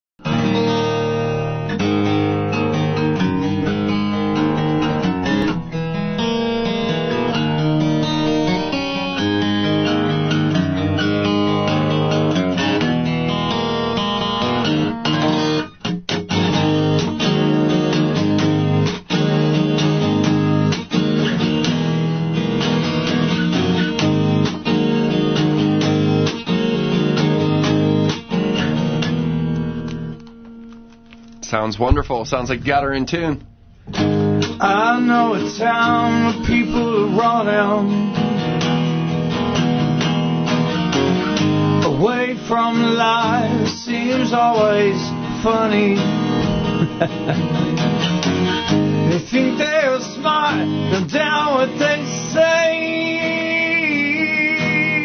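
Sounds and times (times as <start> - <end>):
acoustic guitar chords: 0.2 - 55.0.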